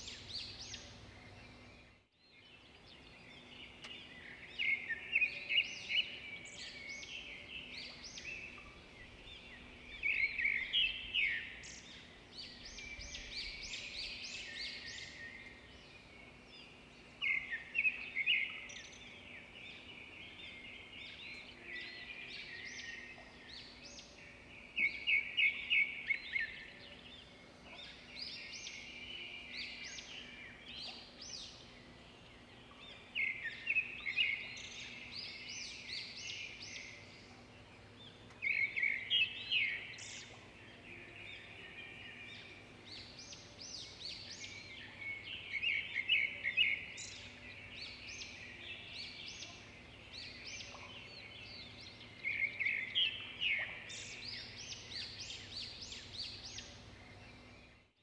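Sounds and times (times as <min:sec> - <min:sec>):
songbirds chirping: 0:00.0 - 0:58.0.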